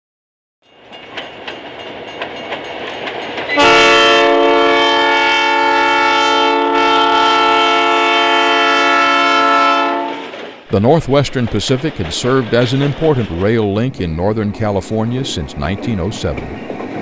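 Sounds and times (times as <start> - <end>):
freight train rumbling: 0.6 - 17.0
wheels clicking over rail joints: 0.8 - 3.6, 10.2 - 13.9
locomotive air horn chord: 3.6 - 10.4.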